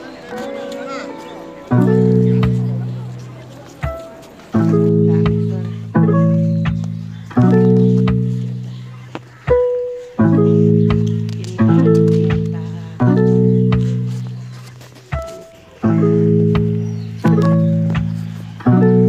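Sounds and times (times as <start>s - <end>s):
low ringing chords: 0.0s - 3.9s.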